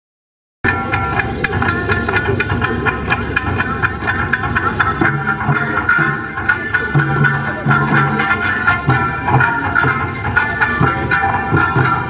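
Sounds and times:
sustained high melody: 0:00.6 - 0:12.0
taiko drums beating: 0:00.6 - 0:12.0.

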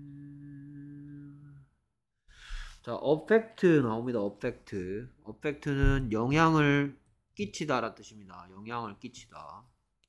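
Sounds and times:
man humming low: 0:00.0 - 0:01.8.

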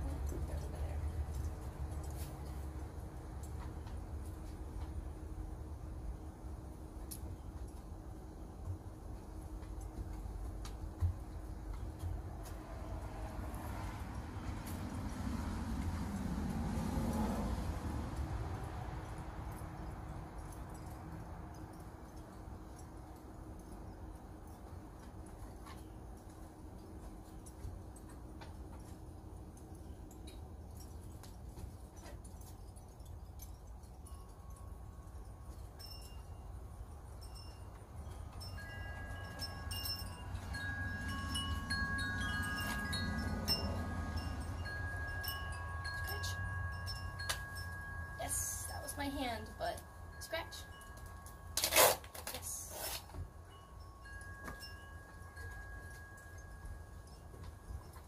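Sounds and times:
low steady rumble: 0:00.0 - 0:51.7
wind chimes ringing: 0:16.1 - 0:58.0.

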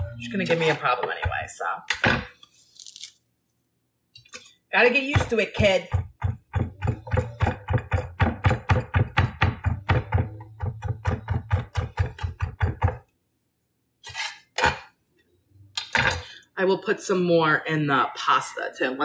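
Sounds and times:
knife chopping on cutting board: 0:05.1 - 0:13.0.

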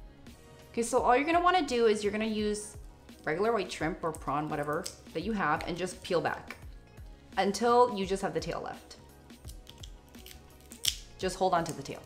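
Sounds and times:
soft background music: 0:00.0 - 0:12.0
shrimp shell crackling: 0:09.4 - 0:12.0.

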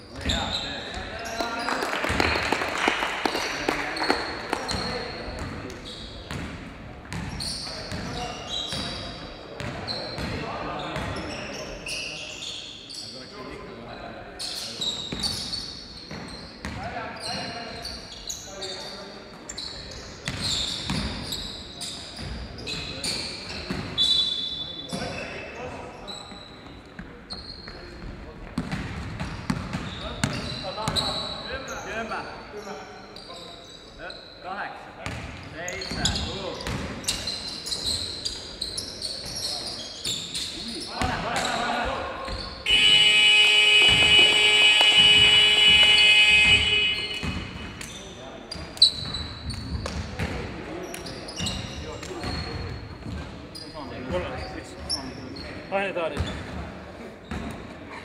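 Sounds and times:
sneakers squeaking: 0:00.0 - 0:02.6, 0:03.3 - 0:13.6, 0:14.4 - 0:58.0
ball bouncing: 0:42.3 - 0:48.0
electronic game horn: 0:42.7 - 0:47.5.

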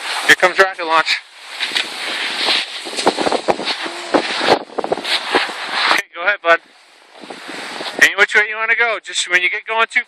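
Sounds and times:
skis scraping on hard snow: 0:00.0 - 0:06.1, 0:07.2 - 0:08.2
wind on microphone: 0:01.3 - 0:08.4.

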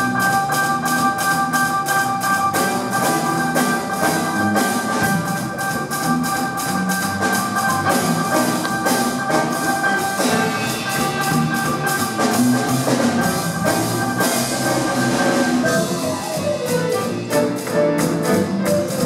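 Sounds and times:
big band playing: 0:00.0 - 0:19.0
piano: 0:00.0 - 0:19.0.

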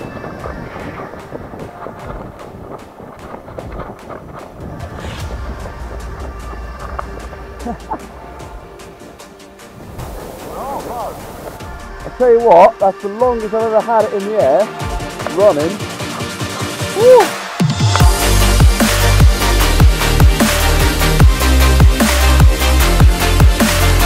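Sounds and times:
wind buffeting microphone: 0:00.0 - 0:12.6
background music: 0:00.0 - 0:24.0.

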